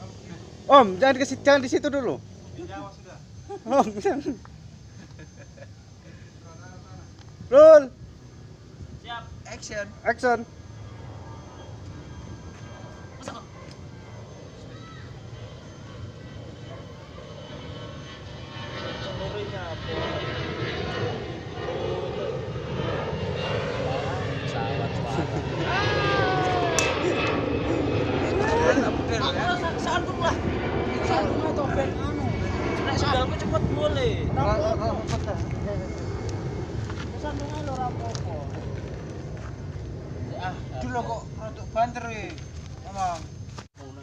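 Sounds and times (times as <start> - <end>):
men talking: 0.0 - 4.5, 5.4 - 8.0, 8.9 - 10.5, 18.9 - 22.7, 23.5 - 39.0, 40.1 - 44.0
distant engine rumble: 0.0 - 43.6.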